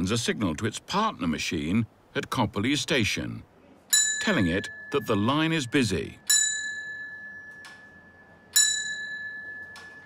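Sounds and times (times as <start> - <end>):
signalling bell ringing: 3.9 - 10.0.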